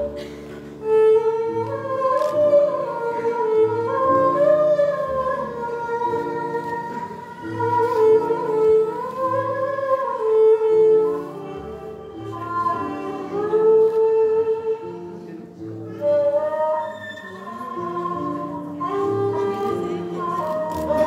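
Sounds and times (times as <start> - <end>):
string ensemble playing slow melody: 0.0 - 21.0.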